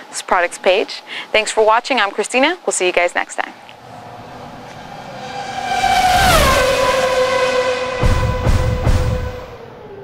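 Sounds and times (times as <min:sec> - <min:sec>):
outro tones sliding down: 0:03.7 - 0:10.0.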